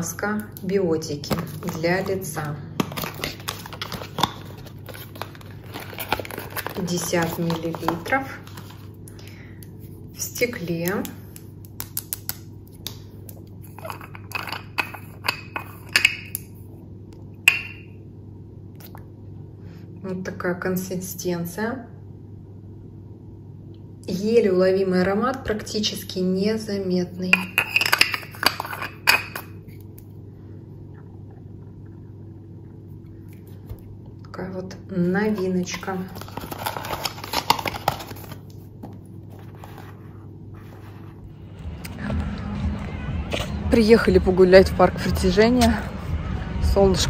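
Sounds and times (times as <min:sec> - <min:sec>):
faint steady hum: 0:00.0 - 0:47.0
jar lid scraping: 0:13.7 - 0:16.2, 0:27.4 - 0:29.5.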